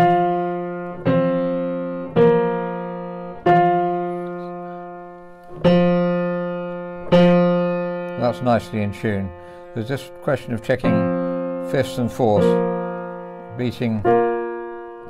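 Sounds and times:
piano intervals ringing: 0.0 - 15.0.

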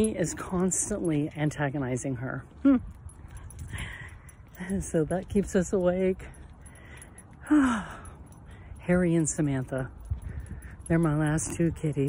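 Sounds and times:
woman speaking: 0.0 - 2.5, 4.6 - 6.3, 10.9 - 12.0
wind rumbling on microphone: 0.0 - 7.0, 7.8 - 12.0.

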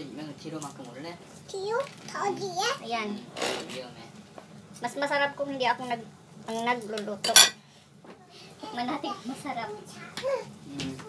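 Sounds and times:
metallic kitchenware clink: 7.2 - 7.6.

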